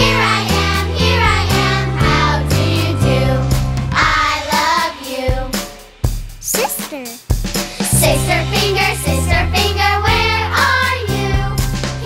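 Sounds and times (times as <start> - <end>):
backing track music: 0.0 - 12.0
child singing: 7.8 - 11.6.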